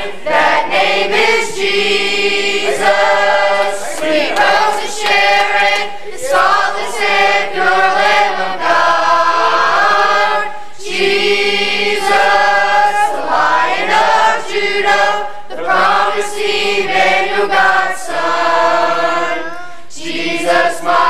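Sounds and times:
youth choir singing gospel: 0:00.0 - 0:21.0
singers breathing: 0:19.6 - 0:19.9.

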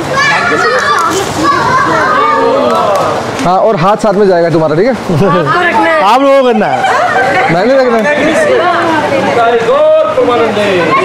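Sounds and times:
high-pitched voices chattering: 0:00.0 - 0:02.9, 0:10.2 - 0:11.0.

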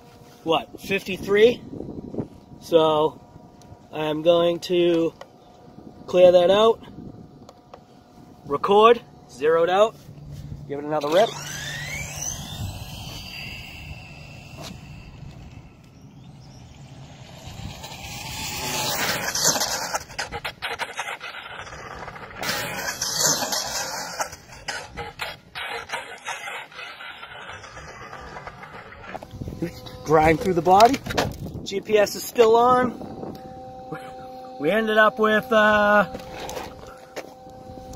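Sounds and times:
electric toy car motor whining: 0:10.9 - 0:37.9.

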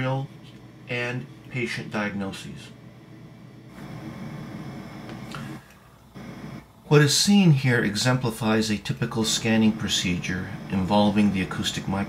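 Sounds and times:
stepper motors humming: 0:09.2 - 0:12.0.

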